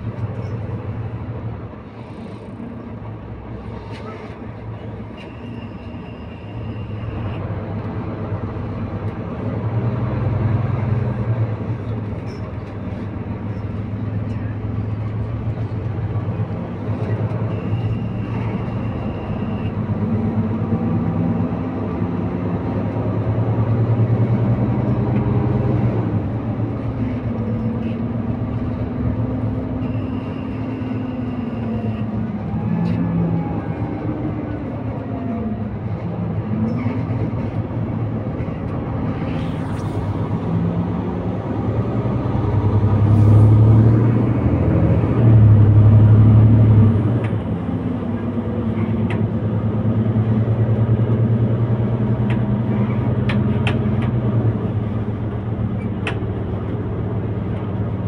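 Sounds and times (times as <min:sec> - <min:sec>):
bus diesel engine: 0:00.0 - 0:58.0.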